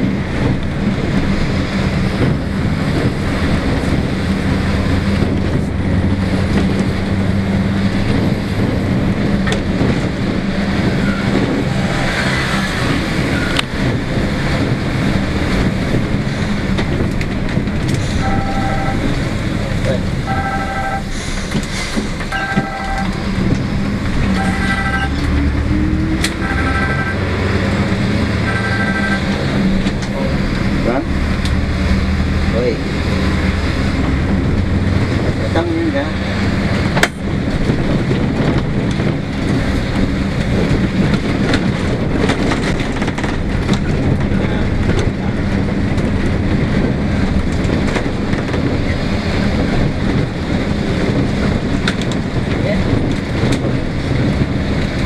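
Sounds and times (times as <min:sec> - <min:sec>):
bus engine running: 0:00.0 - 0:55.0
short electronic beep: 0:22.3 - 0:23.1.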